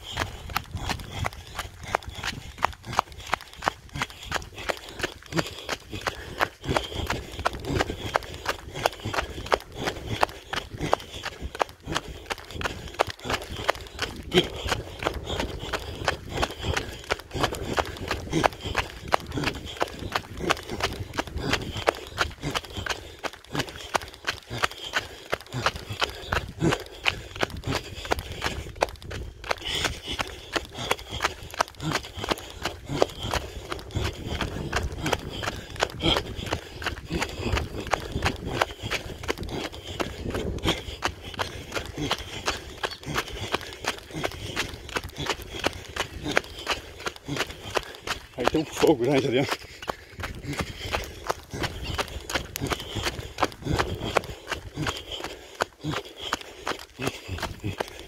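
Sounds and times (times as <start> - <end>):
sandals striking dirt road: 0.0 - 58.0.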